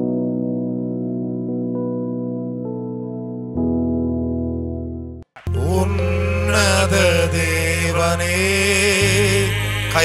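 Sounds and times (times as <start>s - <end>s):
low drone: 5.4s - 10.0s
person chanting long notes: 5.4s - 10.0s.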